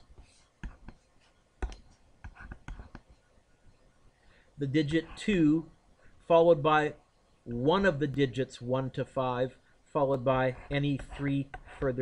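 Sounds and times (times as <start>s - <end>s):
stylus tapping a screen: 0.0s - 3.2s
soft whispering: 9.5s - 12.0s.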